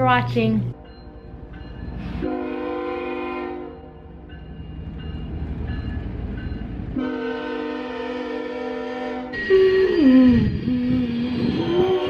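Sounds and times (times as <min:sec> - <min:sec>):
freight train rumbling: 0:00.0 - 0:12.0
locomotive horn blasts: 0:02.2 - 0:03.9, 0:07.0 - 0:10.0.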